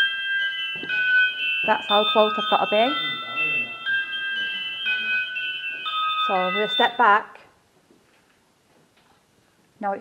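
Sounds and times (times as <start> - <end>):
high-pitched electronic tune: 0.0 - 7.1.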